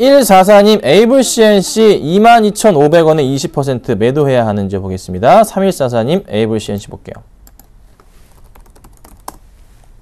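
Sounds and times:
laptop keyboard typing: 7.4 - 9.5.

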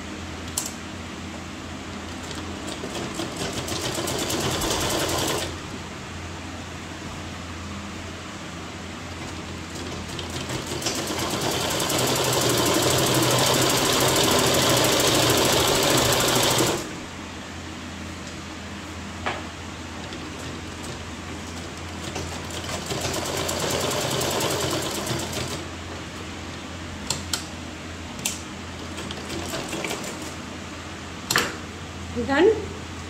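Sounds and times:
sewing machine stitching: 9.7 - 16.9, 22.0 - 25.6.

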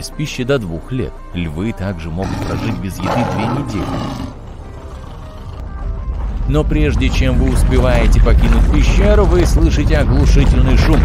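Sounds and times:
background music: 0.0 - 11.0
lion roar: 2.2 - 5.8
deep low rumble of cave-in: 2.2 - 11.0.

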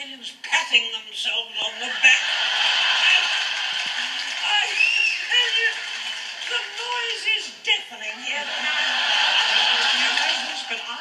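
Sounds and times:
audience applause: 2.1 - 7.3, 8.4 - 11.0.

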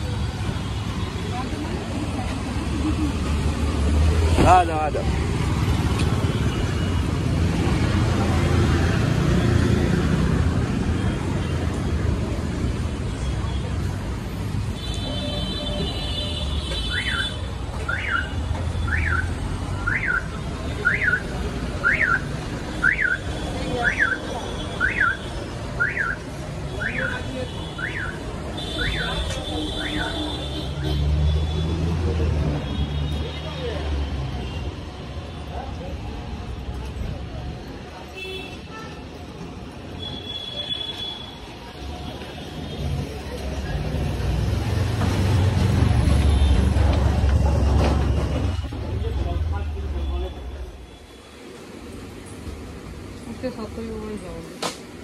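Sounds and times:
street noise: 0.0 - 55.0.

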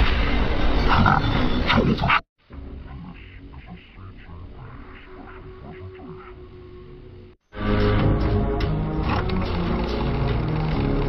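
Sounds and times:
quieter distorted sound: 2.0 - 7.4
distorted logo jingle: 2.6 - 6.9.

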